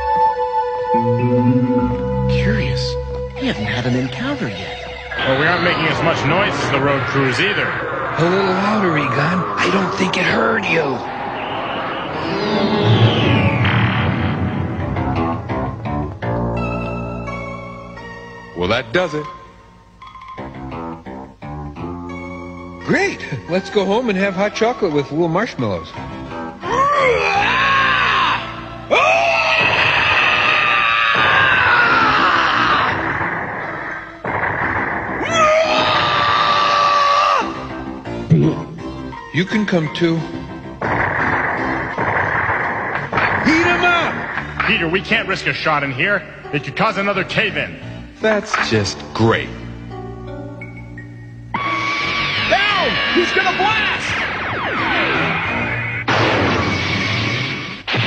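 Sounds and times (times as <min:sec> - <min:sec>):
music score: 0:00.0 - 0:24.9
background music: 0:00.0 - 0:58.0
falling electronic whines: 0:04.9 - 0:15.5, 0:51.6 - 0:57.9
loud rushing blast: 0:05.1 - 0:15.6, 0:32.9 - 0:36.1, 0:40.8 - 0:44.7, 0:54.0 - 0:58.0
cartoon characters screaming: 0:26.6 - 0:33.2, 0:35.2 - 0:37.6, 0:51.6 - 0:55.0.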